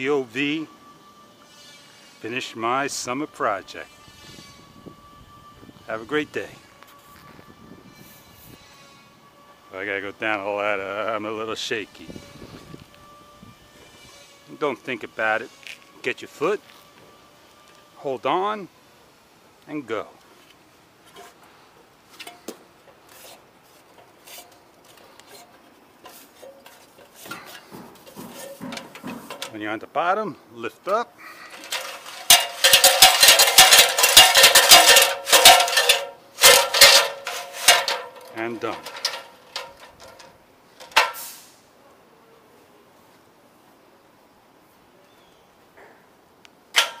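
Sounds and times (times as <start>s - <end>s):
clinks on metal ladder: 25.3s - 29.6s, 31.5s - 41.2s, 46.7s - 47.0s.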